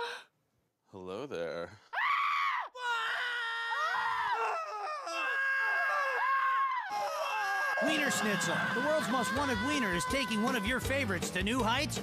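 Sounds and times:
man screaming: 2.0 - 10.8.

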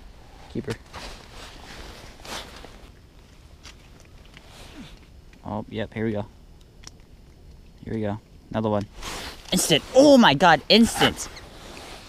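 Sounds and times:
clothing rustling: 0.8 - 5.0
light ticks: 6.6 - 8.1
fishing rod scrape: 9.0 - 10.0.

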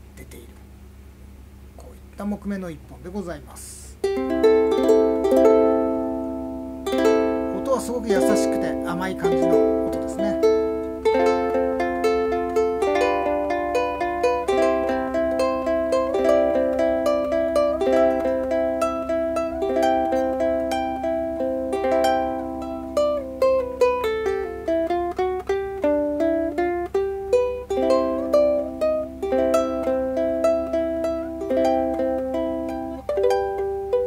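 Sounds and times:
fingerpicked ukulele: 4.0 - 34.0.

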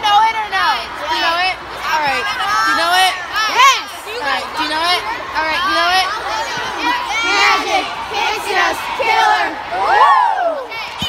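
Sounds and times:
girls shouting and yelling: 0.0 - 11.0.

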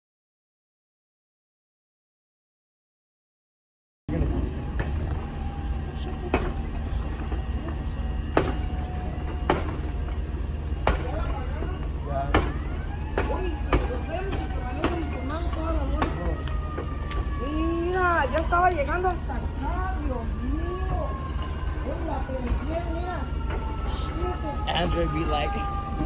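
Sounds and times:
low engine drone: 4.1 - 26.0
voices: 4.1 - 26.0
sharp cracks of burning roof: 8.2 - 17.6.

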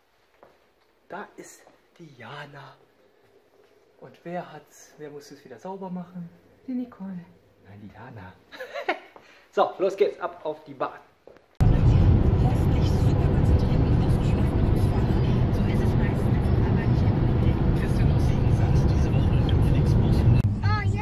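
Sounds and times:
road and engine noise in car cabin: 11.6 - 21.0.

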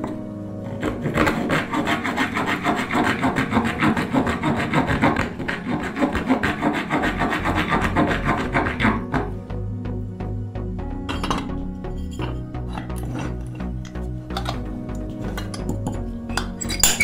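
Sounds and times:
hand saw cutting wood: 0.0 - 9.3, 12.3 - 17.0.

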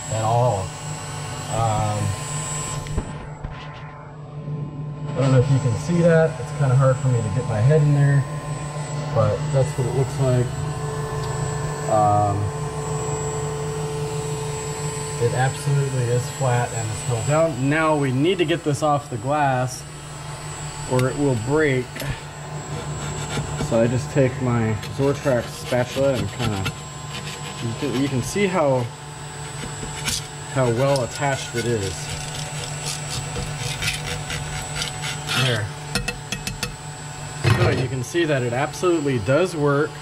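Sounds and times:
fans droning: 0.0 - 40.0
thin whine: 0.0 - 40.0.

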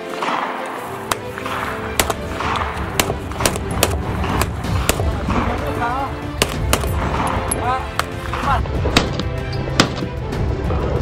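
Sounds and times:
pistol shots: 0.2 - 10.1.

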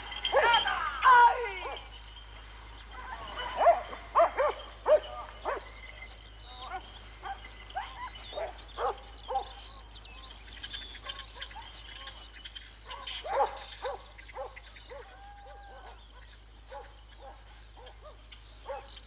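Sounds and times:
dogs barking and yelping: 0.0 - 2.2, 2.9 - 9.9, 10.8 - 19.0.

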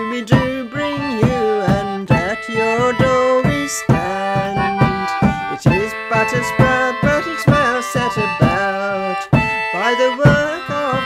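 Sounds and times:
sustained melody line: 0.0 - 11.0.

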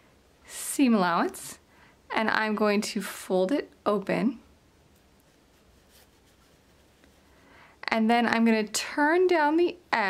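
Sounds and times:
fabric rustling being folded: 5.0 - 7.3.

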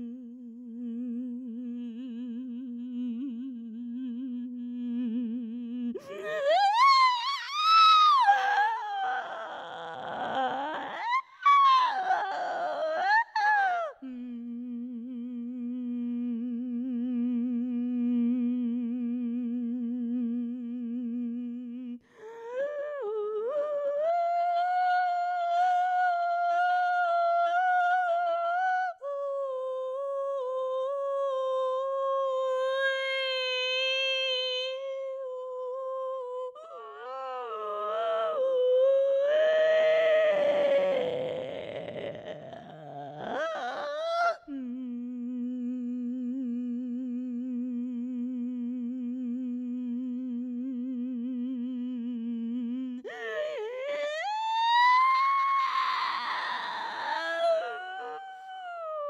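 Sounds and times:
woman humming long notes: 0.0 - 10.9, 11.9 - 59.0.

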